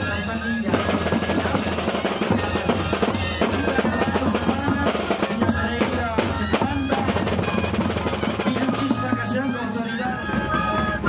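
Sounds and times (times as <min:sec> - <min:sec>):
cane flutes melody: 0:00.0 - 0:11.0
drums beating: 0:00.0 - 0:11.0.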